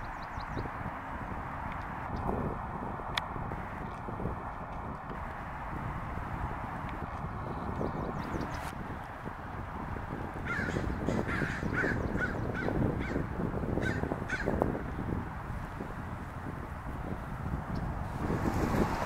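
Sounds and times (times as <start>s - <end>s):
crows cawing: 10.4s - 14.6s.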